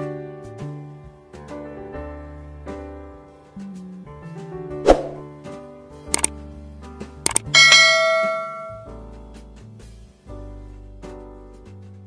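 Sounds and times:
soft background music: 0.0s - 12.0s
mouse clicks: 7.3s - 7.5s
notification bell ding: 7.3s - 8.9s.

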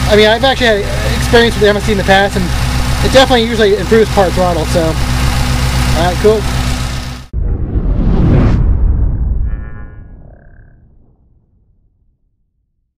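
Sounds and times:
engine idling: 0.0s - 7.3s
cinematic rumble and whoosh: 6.5s - 12.9s.

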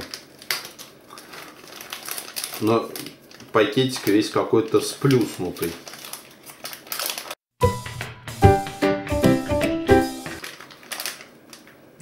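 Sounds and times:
plastic wrapper crinkling and tearing: 0.0s - 7.4s, 10.4s - 11.9s
held musical tone: 7.6s - 10.4s.

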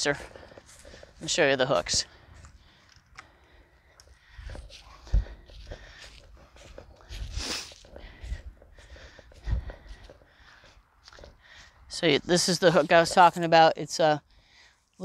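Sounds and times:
footsteps on grass and dry leaves: 0.0s - 3.2s, 4.0s - 13.5s.

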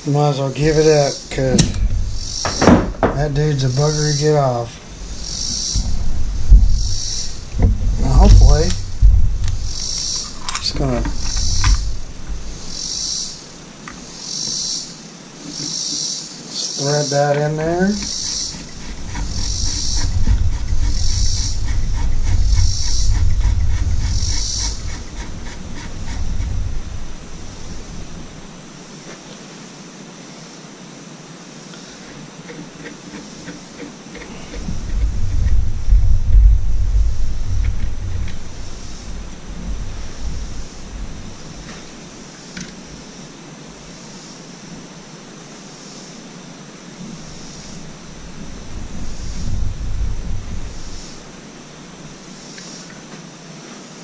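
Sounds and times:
deep rumbling: 0.0s - 13.9s, 17.6s - 28.7s, 34.2s - 42.2s, 47.0s - 52.2s
soft rhythmic scraping: 0.1s - 29.4s, 31.7s - 43.1s, 46.9s - 53.8s.

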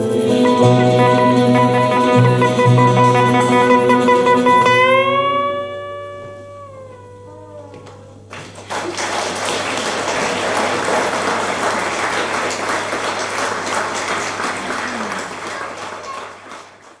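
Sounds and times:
steady low hum: 0.0s - 9.0s
audience applauding: 7.8s - 17.0s.

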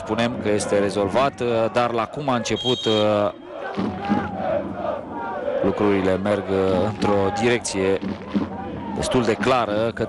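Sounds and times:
football supporters chanting: 0.0s - 10.0s.

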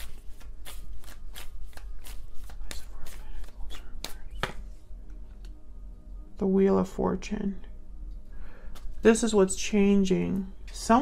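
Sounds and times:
cards being shuffled by hand: 0.0s - 4.7s.

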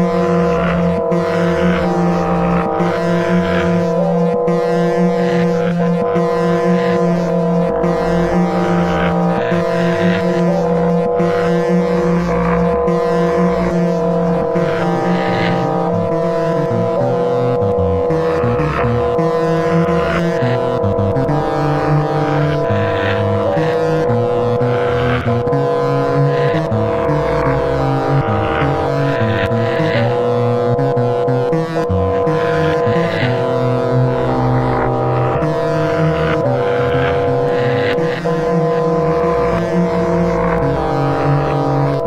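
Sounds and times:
low pulses: 0.0s - 42.0s
noisy swells: 0.0s - 42.0s
sustained drone chord: 0.0s - 42.0s.

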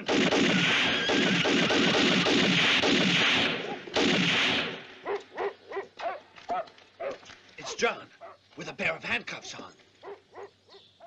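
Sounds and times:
rapid gunfire: 0.0s - 4.8s.

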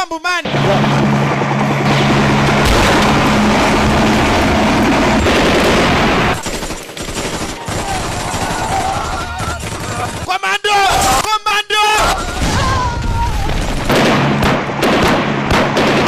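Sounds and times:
low helicopter drone: 0.4s - 10.3s
explosion roar: 0.5s - 6.4s
gunshots: 0.5s - 10.3s, 12.0s - 16.0s.

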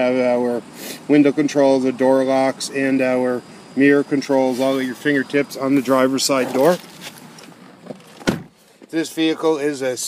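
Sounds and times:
man speaking: 0.0s - 6.8s, 8.9s - 10.0s.

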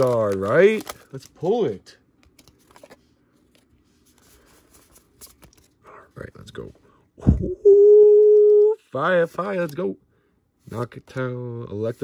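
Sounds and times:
trading cards rustling: 0.0s - 5.8s.

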